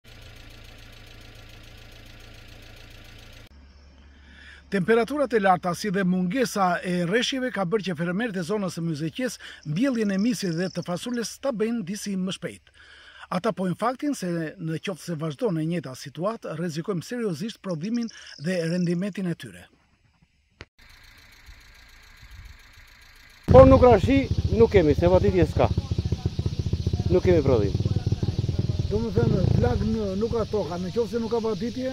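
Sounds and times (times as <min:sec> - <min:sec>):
engine running steadily: 0:00.1 - 0:03.5, 0:20.8 - 0:31.9
low rumble: 0:23.5 - 0:31.4.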